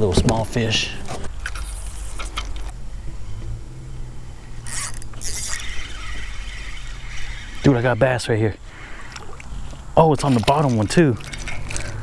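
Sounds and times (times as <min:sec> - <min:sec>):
fishing reel mechanical clicks: 0:04.6 - 0:09.4.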